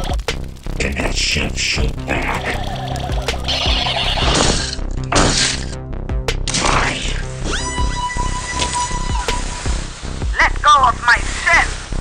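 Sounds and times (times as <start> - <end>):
film soundtrack music: 0.0 - 12.0
warbling voice-like calls: 0.9 - 4.7.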